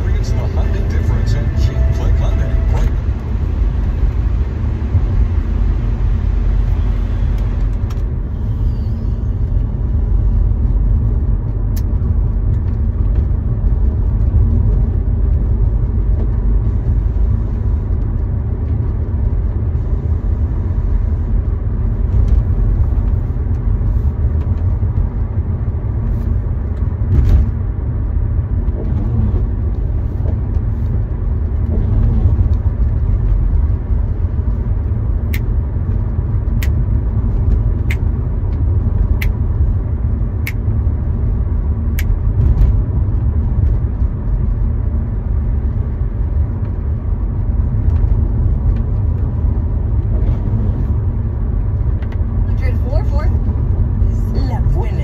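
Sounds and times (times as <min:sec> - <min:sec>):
car cabin road rumble: 0:00.0 - 0:55.0.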